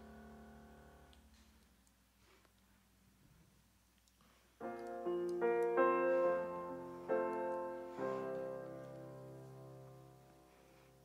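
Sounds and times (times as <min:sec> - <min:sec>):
keyboard piano chords: 0:04.6 - 0:11.0.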